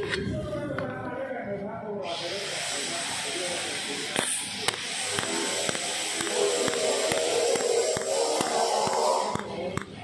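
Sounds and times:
shielding gas hissing: 0:02.0 - 0:10.0.

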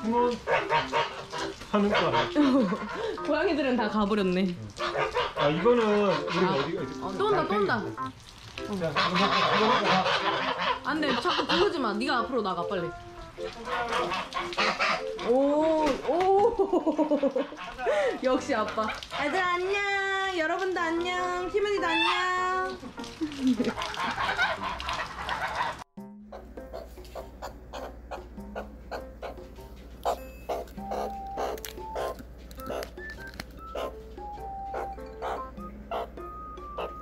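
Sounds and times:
geese hissing: 0:00.4 - 0:03.1, 0:04.8 - 0:06.8, 0:08.9 - 0:11.9, 0:13.6 - 0:15.1, 0:24.0 - 0:29.4, 0:30.0 - 0:34.0, 0:34.6 - 0:37.0
low goose calls: 0:24.4 - 0:29.4, 0:30.0 - 0:32.9, 0:33.6 - 0:34.0, 0:34.7 - 0:37.0.

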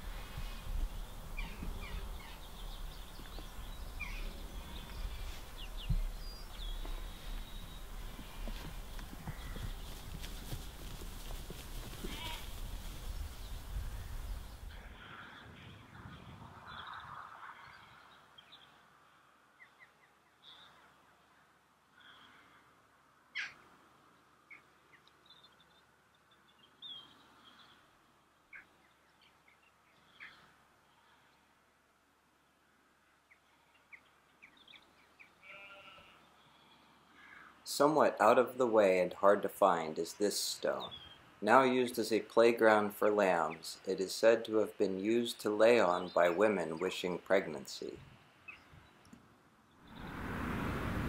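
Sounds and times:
faint bird chirps: 0:00.3 - 0:10.1
sheep bleating: 0:08.1 - 0:09.7, 0:11.6 - 0:12.6, 0:35.4 - 0:37.0.

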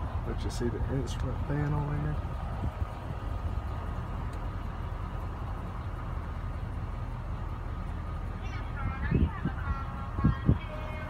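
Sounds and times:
pickup engine idling: 0:00.0 - 0:11.0.

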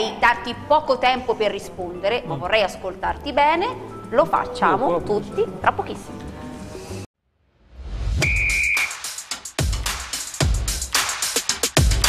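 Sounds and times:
high whistle tone: 0:08.2 - 0:09.2.

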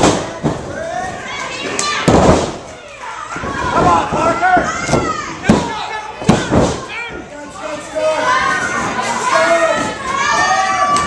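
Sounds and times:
crowd shouting: 0:02.7 - 0:11.0.

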